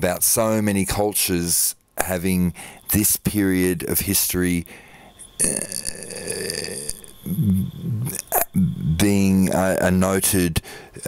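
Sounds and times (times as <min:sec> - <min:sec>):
man saying uh: 0:07.3 - 0:11.0.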